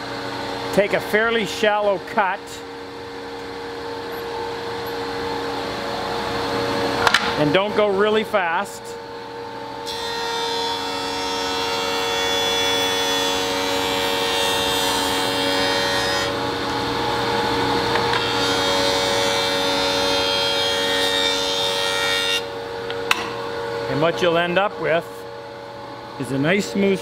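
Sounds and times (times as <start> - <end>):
jointer planing wood: 9.9 - 22.5.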